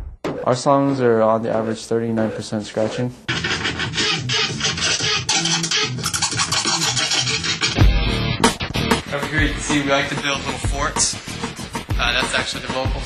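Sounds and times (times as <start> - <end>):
turntable scratching: 0.0 - 13.0
music: 3.3 - 13.0.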